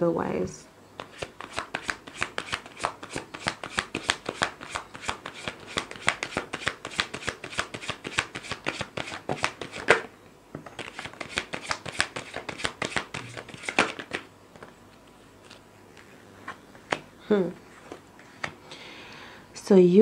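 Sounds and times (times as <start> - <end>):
cards being shuffled by hand: 1.0 - 18.6.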